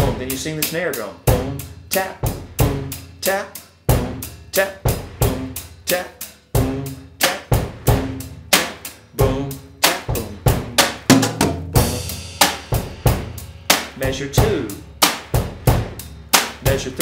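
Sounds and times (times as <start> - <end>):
drum kit beat: 0.0 - 17.0.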